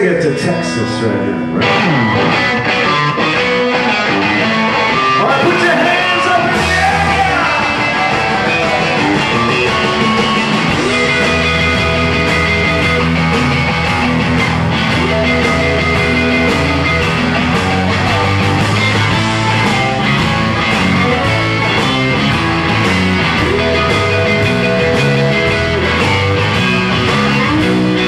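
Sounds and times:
bending lead guitar line: 0.0s - 28.0s
blues-rock band playing: 0.0s - 28.0s.

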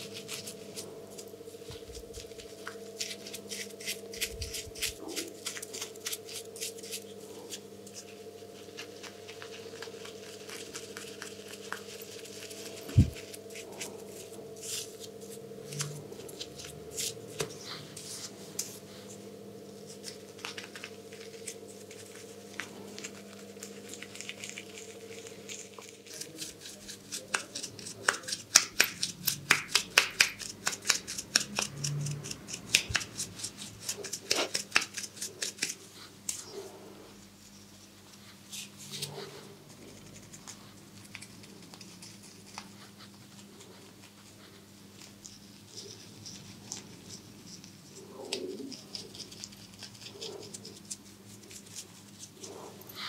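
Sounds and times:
brush crackling on foam: 0.0s - 53.0s.

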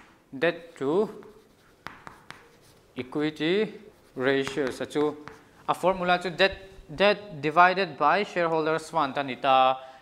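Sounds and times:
chalk scratching: 0.5s - 6.7s
chalk ticking on chalkboard: 0.7s - 6.6s.

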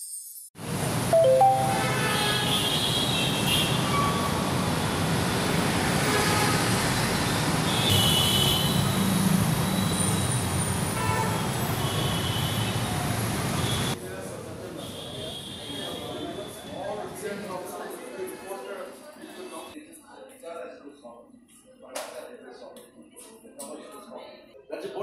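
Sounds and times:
street traffic noise: 0.6s - 19.8s.

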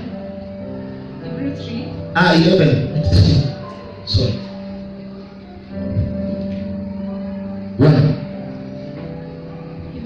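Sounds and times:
sustained keyboard chord: 0.0s - 10.0s.

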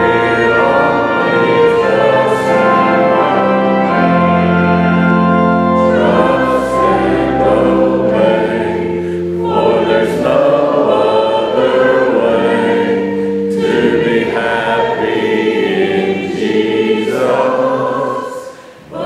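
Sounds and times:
congregation singing: 0.0s - 19.0s.

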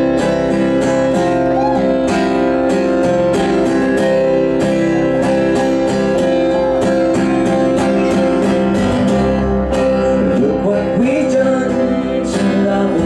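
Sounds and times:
acoustic guitar strumming: 0.0s - 13.0s
electric bass: 0.0s - 13.0s.

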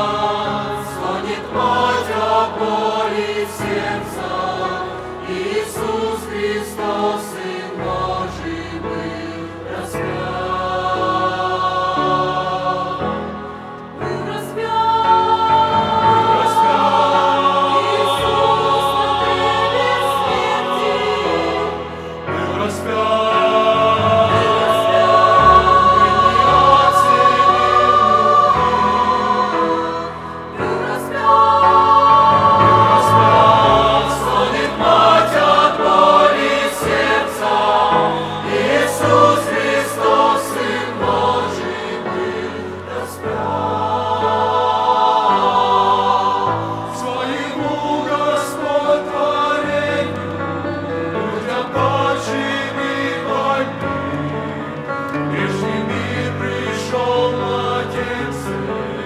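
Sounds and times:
mixed choir singing a hymn: 0.0s - 59.0s.

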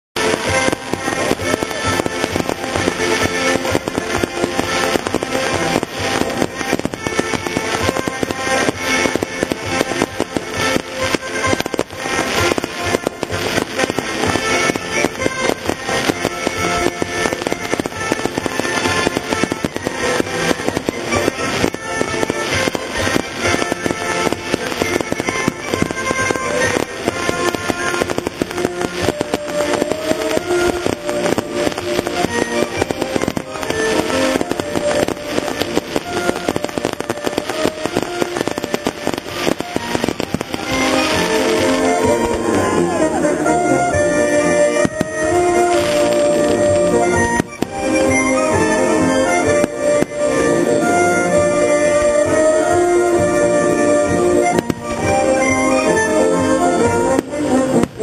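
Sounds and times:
fireworks bursting and crackling: 0.1s - 58.0s
music: 0.2s - 58.0s.

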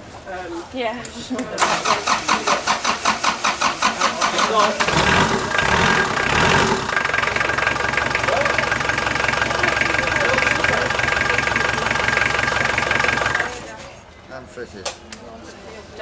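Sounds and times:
boat engine idling: 2.5s - 13.7s.

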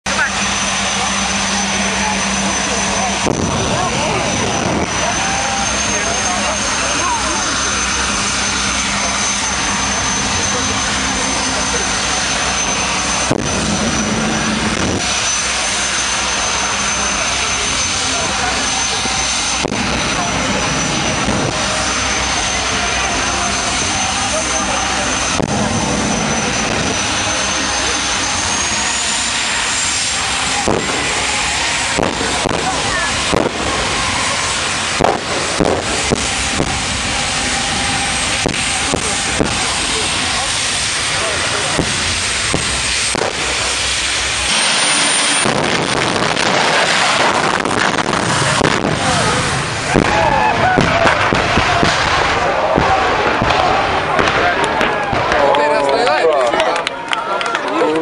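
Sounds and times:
jet engine whining: 0.0s - 58.0s.

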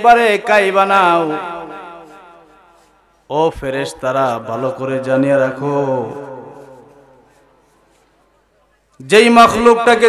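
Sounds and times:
man chanting through loudspeaker: 0.0s - 2.7s, 3.3s - 7.5s, 9.0s - 10.0s.

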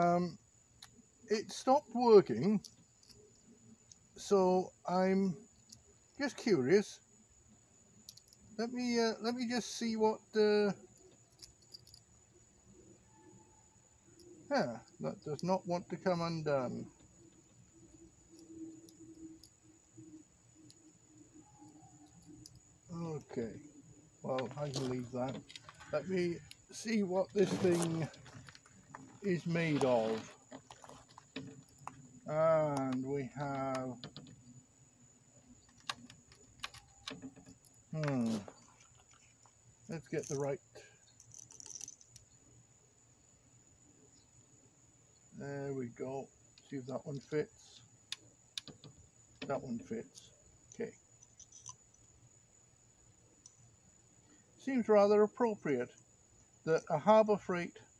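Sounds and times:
faint low hum: 0.0s - 57.9s.

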